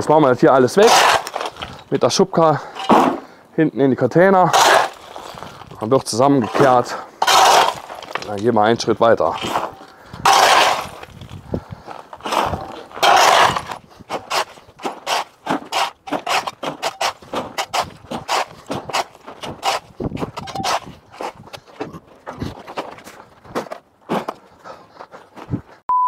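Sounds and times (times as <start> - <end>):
shovel scraping concrete: 0.6 - 2.0, 2.6 - 3.3, 4.4 - 8.5, 9.2 - 11.2, 12.1 - 21.4
rubble clattering into buckets: 0.8 - 3.3, 6.4 - 11.2.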